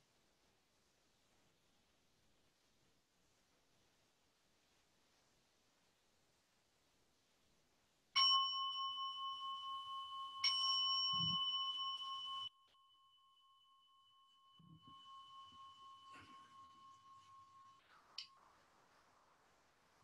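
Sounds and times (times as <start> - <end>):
meditation bell ringing: 8.2 - 18.4.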